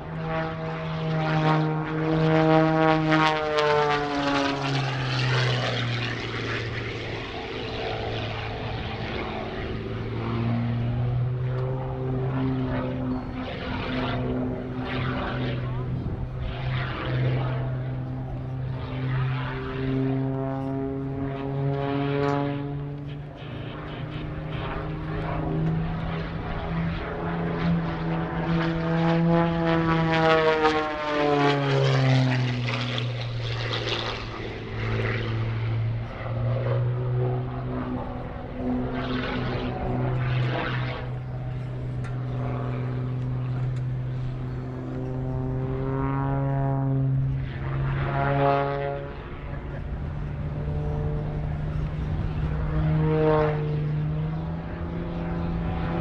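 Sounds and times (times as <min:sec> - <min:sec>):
propeller plane engine at high power: 0:00.0 - 0:56.0.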